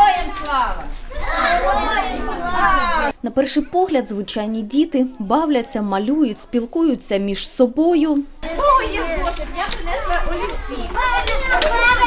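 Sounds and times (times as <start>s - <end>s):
young children chattering: 0.0s - 12.0s.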